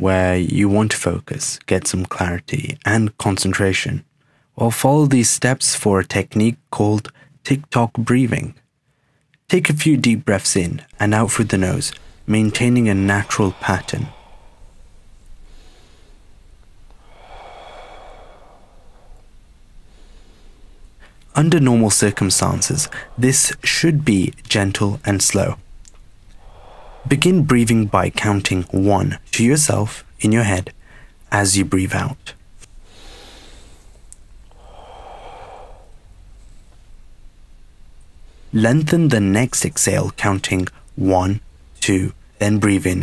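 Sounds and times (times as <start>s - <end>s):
man breathing through the nose: 11.3s - 23.7s, 26.3s - 27.4s, 32.8s - 36.8s
man exhaling slowly: 11.9s - 24.0s, 26.3s - 27.2s, 32.8s - 33.9s, 34.5s - 36.7s.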